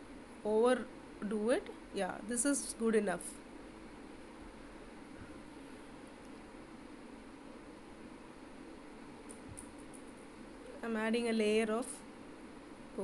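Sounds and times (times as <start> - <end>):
faint background hiss: 0.0 - 13.0.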